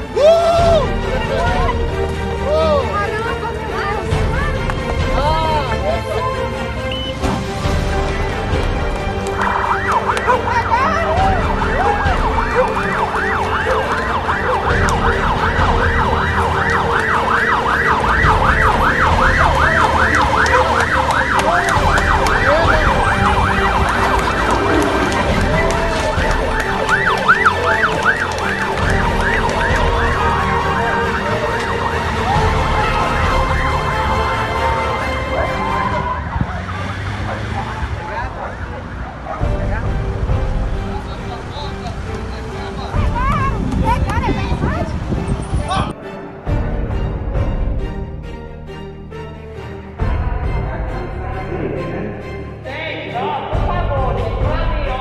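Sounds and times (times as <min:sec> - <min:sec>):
people shouting: 0:00.0 - 0:04.6, 0:09.5 - 0:38.3
emergency siren yelping: 0:09.2 - 0:39.4
low rumble: 0:50.0 - 0:52.7.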